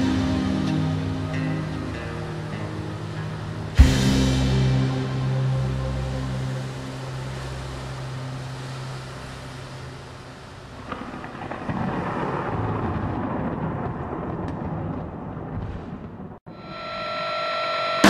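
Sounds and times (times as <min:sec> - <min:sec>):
sustained metal guitar chord: 0:00.0 - 0:08.3
rain hissing: 0:00.0 - 0:13.8
thunder rumbling: 0:03.4 - 0:16.4.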